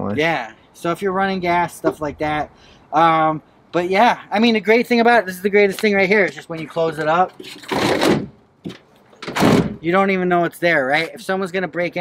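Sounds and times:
truck tailgate shutting with a thunk: 9.2s - 9.8s.

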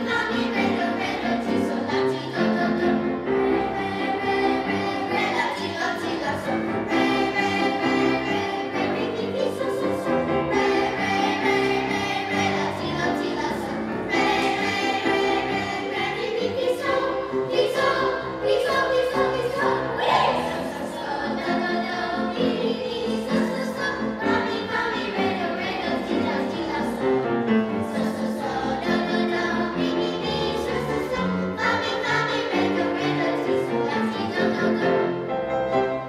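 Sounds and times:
children's choir singing: 0.0s - 36.0s.

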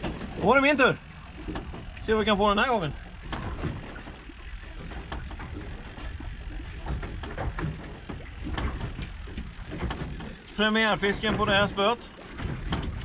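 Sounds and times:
water around a boat: 0.0s - 13.0s
wind: 0.0s - 13.0s.

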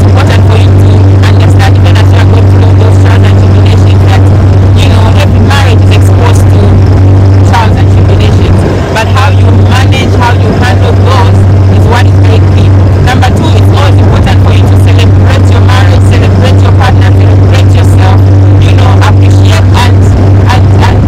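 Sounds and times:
motorboat engine drone: 0.0s - 21.0s.

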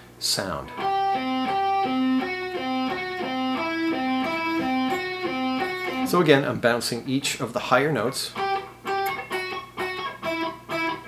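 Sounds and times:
electric guitar single notes: 0.6s - 6.3s, 8.3s - 11.0s.

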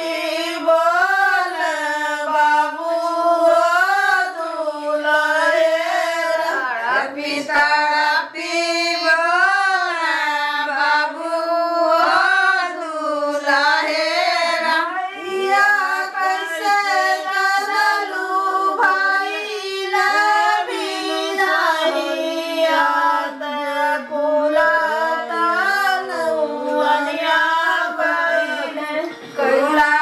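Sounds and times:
women singing together: 0.0s - 30.0s.

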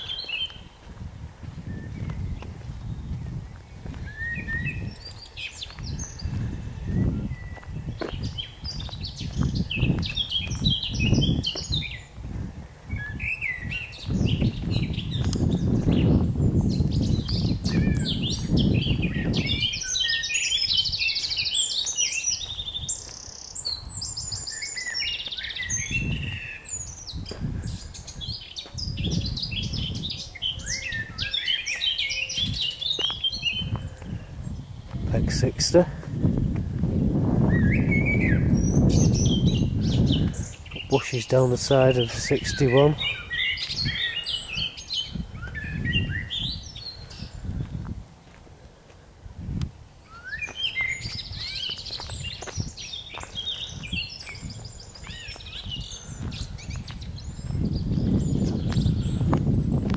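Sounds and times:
footsteps on gravel: 0.0s - 12.6s, 13.6s - 16.2s, 27.2s - 29.2s, 32.4s - 34.2s, 34.8s - 37.2s, 47.4s - 49.8s, 50.4s - 59.9s
songbirds chirping: 0.0s - 59.9s.

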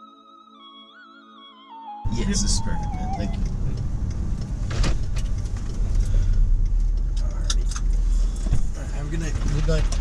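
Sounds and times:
car rumble inside cabin: 2.1s - 10.0s.

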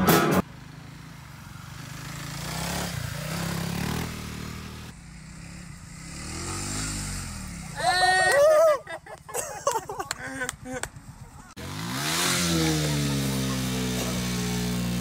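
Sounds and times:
dirt bike engine revving: 0.1s - 8.3s, 11.5s - 15.0s
person shouting: 7.7s - 8.9s.

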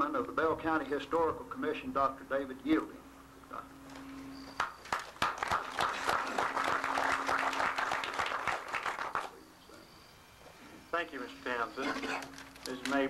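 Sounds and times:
audience applauding: 4.5s - 9.4s.

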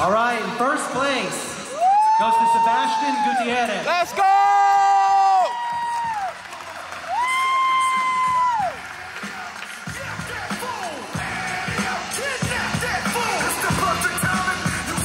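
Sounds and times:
audience cheering: 1.7s - 12.3s
music with steady beat: 8.0s - 15.0s.

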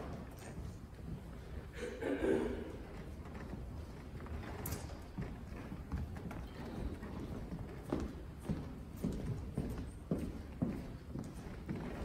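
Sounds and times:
footsteps on hard floor: 5.2s - 12.0s.

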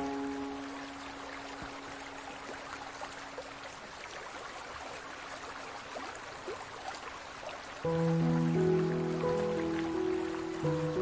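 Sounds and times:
water trickling and splashing: 0.0s - 11.0s
music chords: 7.9s - 11.0s.

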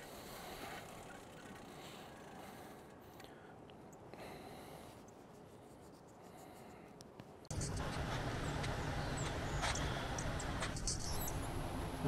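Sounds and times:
steady rustling noise: 3.8s - 12.0s
small birds chirping: 7.5s - 11.8s.

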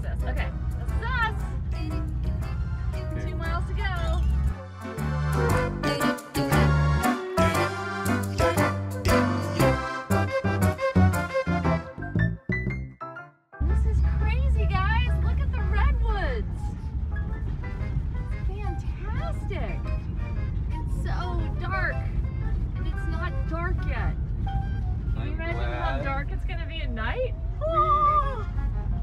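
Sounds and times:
van driving on dirt road: 0.0s - 12.3s, 13.6s - 29.0s.

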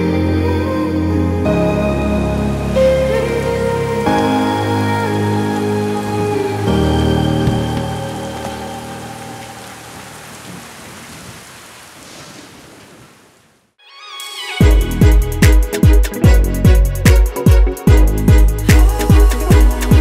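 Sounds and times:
rain falling: 2.5s - 13.8s
electronic music synth chords: 14.6s - 20.0s.

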